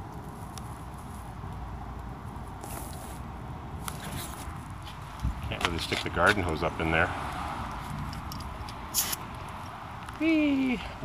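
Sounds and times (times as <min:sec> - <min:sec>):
hose nozzle spray hiss: 0:08.9 - 0:09.2.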